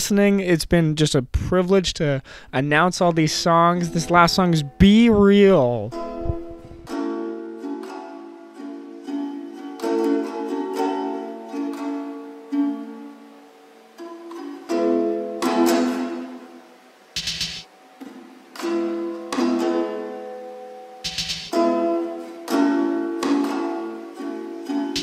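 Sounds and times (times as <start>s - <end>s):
plucked-string instrument chords: 3.5s - 16.8s, 17.7s - 25.0s
noisy percussive hit: 21.0s - 21.6s.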